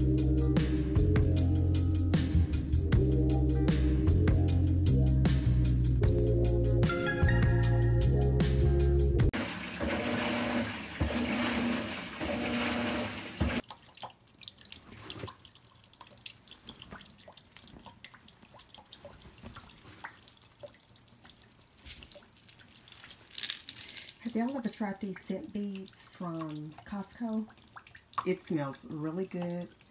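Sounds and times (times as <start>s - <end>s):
water pouring into washing machine: 9.3s - 15.7s
water drips and splashes: 9.3s - 29.9s.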